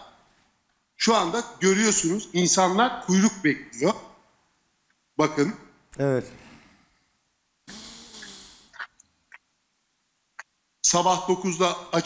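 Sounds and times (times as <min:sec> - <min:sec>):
faint low hum: 0:01.0 - 0:04.0.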